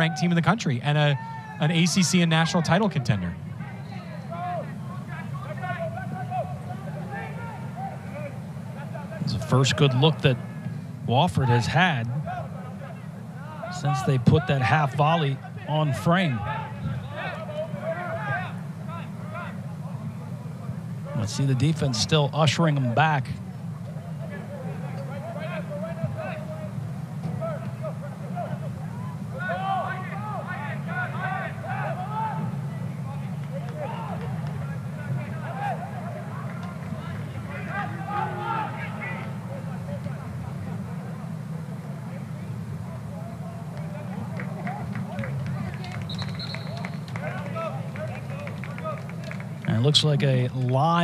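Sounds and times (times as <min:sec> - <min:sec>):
players shouting: 0:00.0 - 0:19.8, 0:24.4 - 0:41.3
referee whistle blast: 0:46.1 - 0:47.1.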